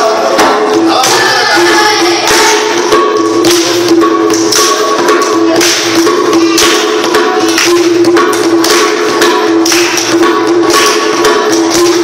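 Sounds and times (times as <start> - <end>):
jingling percussion: 0.0 - 12.0.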